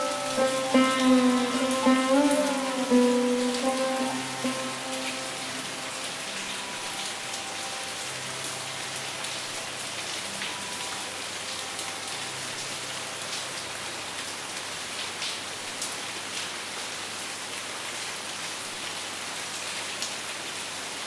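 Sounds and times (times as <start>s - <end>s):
sitar music: 0.0s - 12.6s
rain falling: 0.0s - 21.0s.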